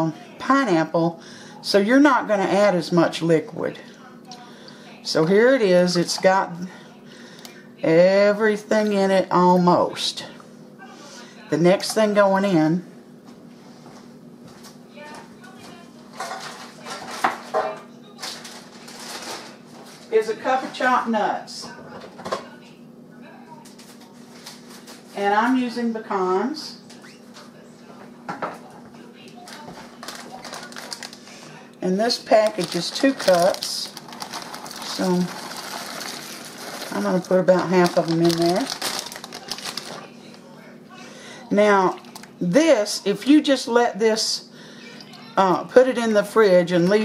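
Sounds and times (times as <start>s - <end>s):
plastic package rustling: 18.2s - 19.6s, 29.5s - 31.4s, 32.0s - 40.4s.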